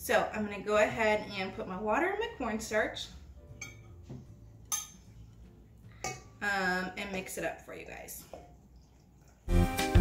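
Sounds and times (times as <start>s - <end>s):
metal spoon clinking on dish: 3.6s - 4.0s, 4.6s - 5.0s, 6.0s - 6.3s.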